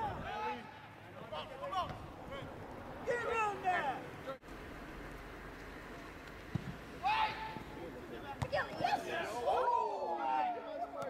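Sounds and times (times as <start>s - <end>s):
players shouting: 0.0s - 4.2s, 7.0s - 11.0s.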